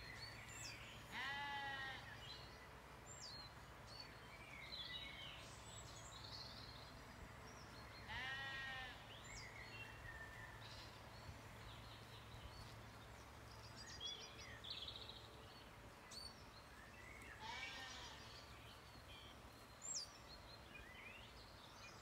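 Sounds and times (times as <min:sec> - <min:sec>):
sheep bleating: 0:01.1 - 0:02.1, 0:08.1 - 0:09.0, 0:17.4 - 0:18.3.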